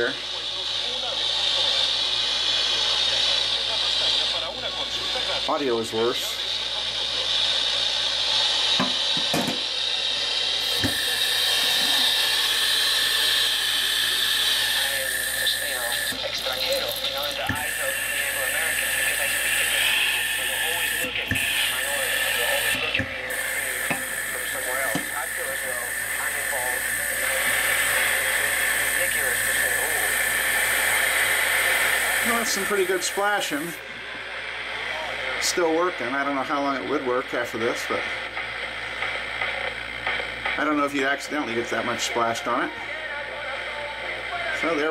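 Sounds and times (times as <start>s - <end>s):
poor-reception tv broadcast voice: 0.0s - 44.9s
sink sprayer water splashing: 10.6s - 33.8s.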